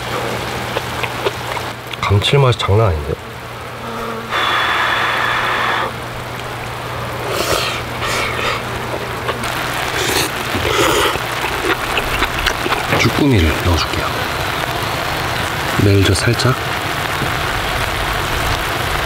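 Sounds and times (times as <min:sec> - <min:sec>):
person chewing and slurping: 0:00.0 - 0:01.7, 0:07.2 - 0:13.1
stew simmering and bubbling: 0:00.0 - 0:19.0.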